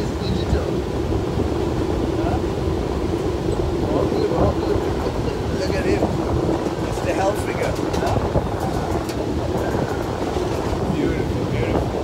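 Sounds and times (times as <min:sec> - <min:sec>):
train wheels and carriage rumbling: 0:00.0 - 0:12.0
wind on microphone: 0:00.0 - 0:12.0.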